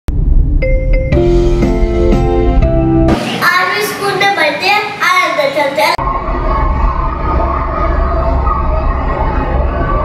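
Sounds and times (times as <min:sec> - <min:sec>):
steady low rumble: 0:00.1 - 0:03.0
children chattering: 0:03.5 - 0:10.0.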